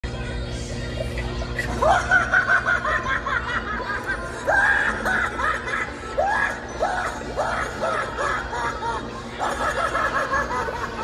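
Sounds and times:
recorded cackling laugh from speaker: 1.6s - 11.0s.

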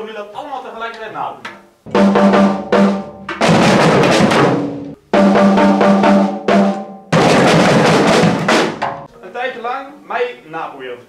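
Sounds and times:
group of drums rolling: 1.9s - 9.1s
snare drum pattern: 1.9s - 9.1s.

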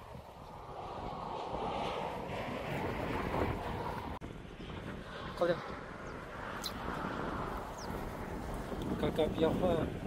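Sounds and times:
wind rushing: 0.0s - 10.0s.

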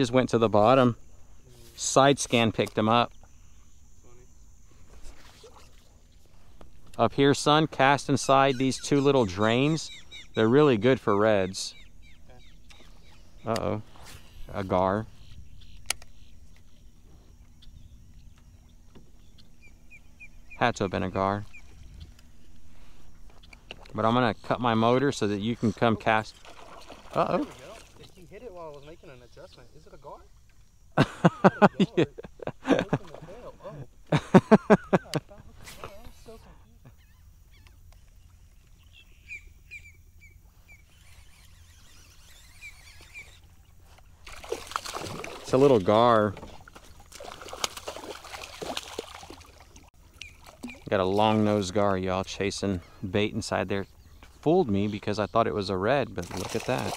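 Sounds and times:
low rumble of wind and water: 0.0s - 56.9s
bird chirping: 5.3s - 26.4s, 35.8s - 44.0s, 50.1s - 56.9s.

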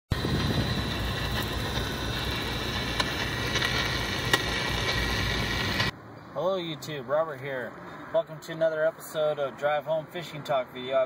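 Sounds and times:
loud steady rushing noise: 0.1s - 6.0s.

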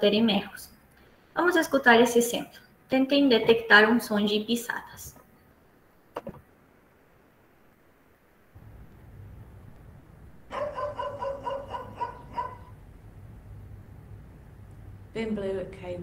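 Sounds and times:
low hum: 5.6s - 16.0s.

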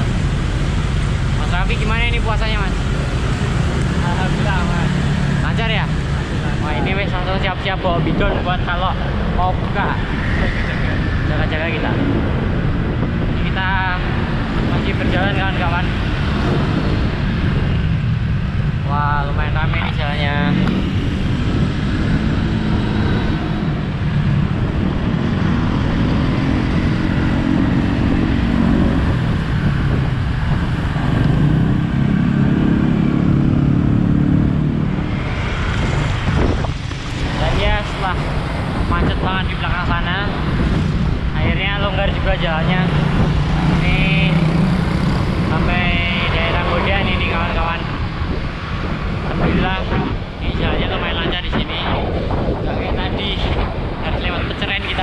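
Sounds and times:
motor-scooter engines running: 0.0s - 51.0s
wind rumble on microphone: 0.0s - 55.0s
voices talking: 1.4s - 12.2s, 18.8s - 21.0s, 37.0s - 40.6s, 41.2s - 48.1s, 49.2s - 55.0s.

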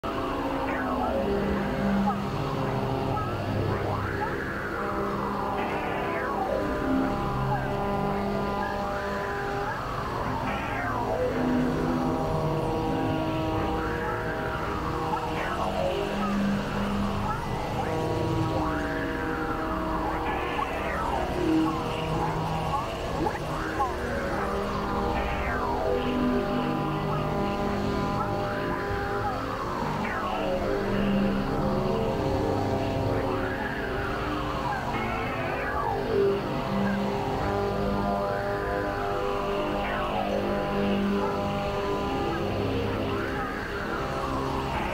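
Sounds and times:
synthesizer drones: 0.0s - 44.9s.

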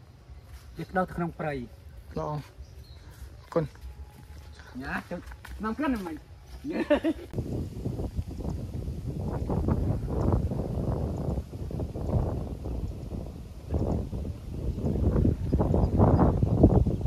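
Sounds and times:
wind buffeting microphone: 6.7s - 17.0s.

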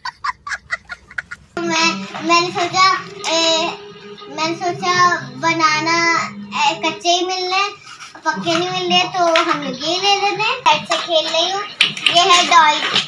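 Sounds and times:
young child laughing: 0.0s - 1.6s
child talking sing-song: 1.6s - 13.0s.

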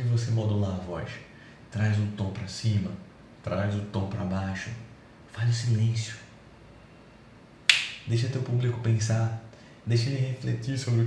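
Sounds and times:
finger snap: 7.7s - 8.1s.

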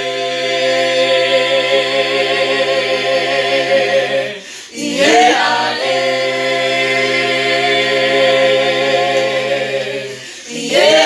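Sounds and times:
group singing a cappella: 0.0s - 11.0s.

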